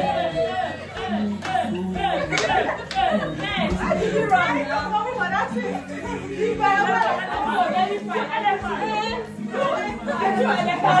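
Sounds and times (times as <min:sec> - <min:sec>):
women chattering: 0:02.6 - 0:11.0.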